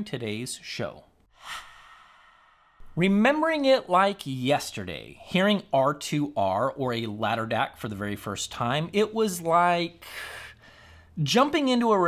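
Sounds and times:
soft breathy whoosh of air: 1.3 - 3.0.

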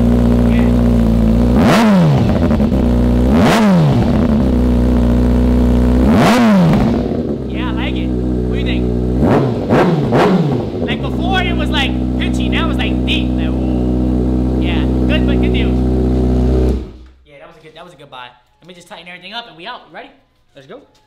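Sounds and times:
motorcycle engine idling and revving: 0.0 - 17.2.

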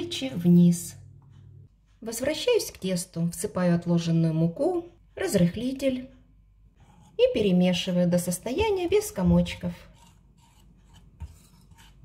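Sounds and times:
whisk scraping in bowl: 6.8 - 8.0, 8.7 - 12.0.

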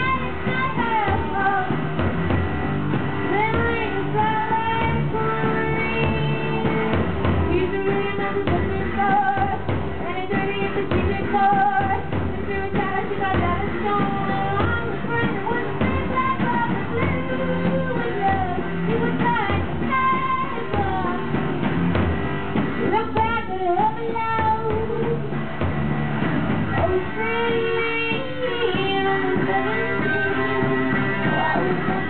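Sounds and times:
woman singing with vibrato: 0.0 - 2.0, 3.2 - 21.6, 22.8 - 25.4, 26.6 - 32.0.

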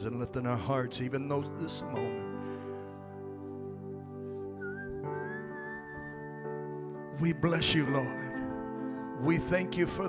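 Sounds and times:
high whistle-like tone: 4.4 - 7.1.

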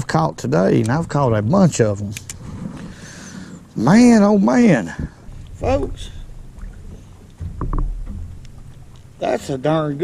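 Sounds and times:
low rumble of boat handling: 0.0 - 10.0.

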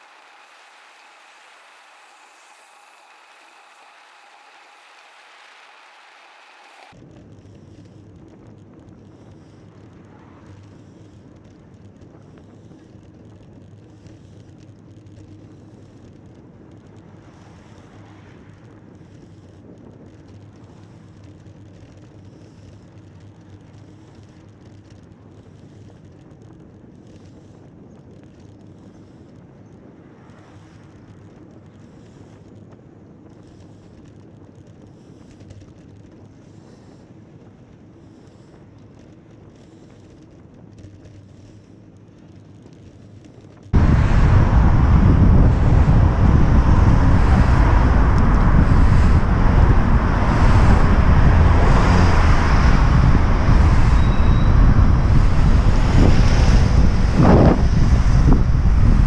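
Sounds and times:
passing motor traffic: 0.0 - 6.9, 43.8 - 59.0
bicycle road noise: 0.0 - 59.0
wind rush on microphone: 0.0 - 59.0.

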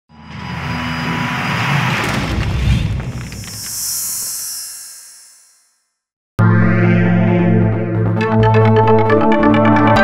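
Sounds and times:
rushing noise swell: 2.6 - 5.9.

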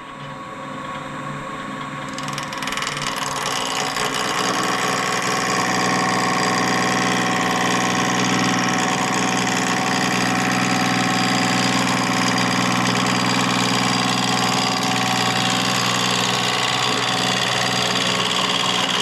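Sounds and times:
lathe motor hum: 2.0 - 19.0
gouge cutting spinning wood: 2.1 - 19.0.

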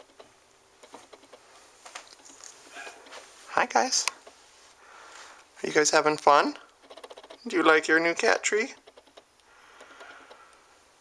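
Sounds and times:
cats moving on carpet: 0.8 - 5.5.

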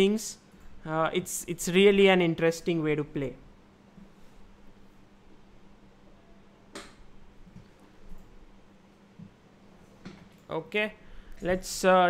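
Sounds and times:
faint electrical hum: 0.0 - 12.0.

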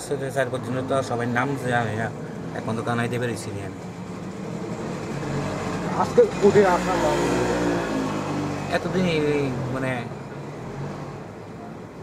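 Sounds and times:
engine and traffic noise: 0.0 - 12.0.

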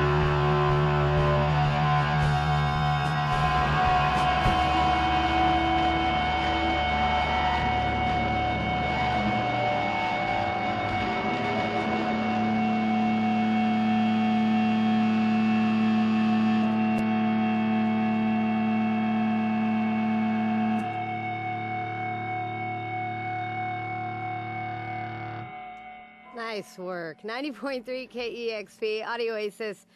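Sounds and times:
distorted electric guitar drone: 0.0 - 26.6.

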